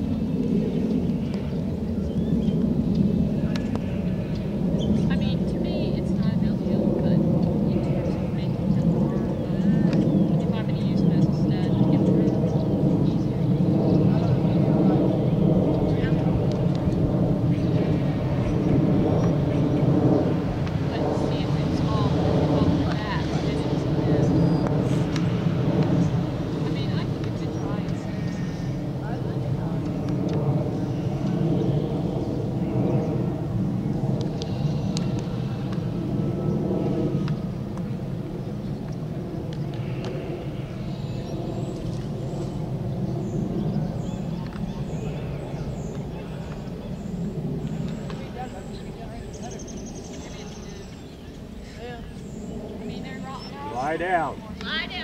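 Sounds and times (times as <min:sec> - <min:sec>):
low droning hum: 0:00.0 - 0:55.0.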